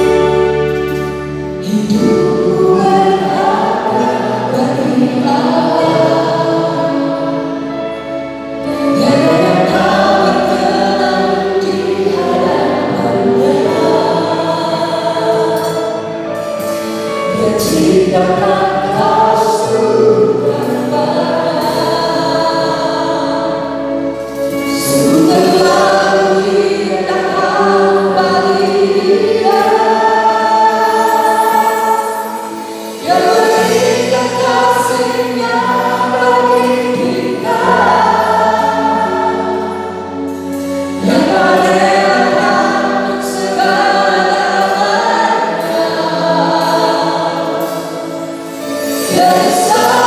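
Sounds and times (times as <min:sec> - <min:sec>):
group singing worship song: 0:00.0 - 0:50.0
held bass notes: 0:00.0 - 0:50.0.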